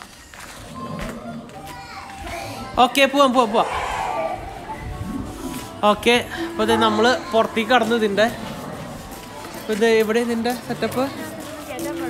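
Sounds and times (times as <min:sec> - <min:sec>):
children chattering: 0:00.0 - 0:12.0
background music: 0:02.2 - 0:10.8.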